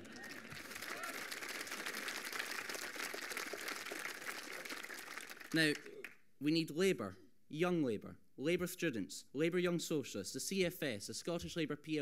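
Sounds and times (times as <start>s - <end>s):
audience applauding: 0.0s - 6.2s
man speaking: 5.5s - 12.0s.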